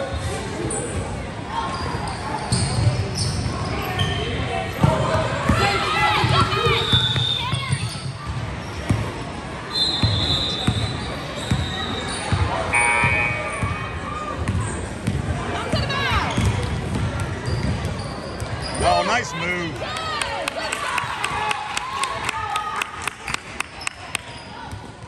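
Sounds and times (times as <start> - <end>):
sneakers squeaking: 0.0 - 19.3, 23.8 - 25.0
voices echoing in a hall: 0.0 - 25.0.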